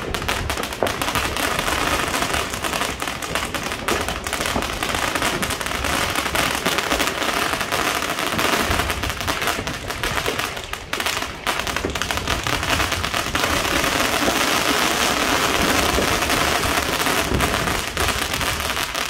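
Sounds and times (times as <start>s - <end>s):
fireworks crackling and popping: 0.0s - 19.0s.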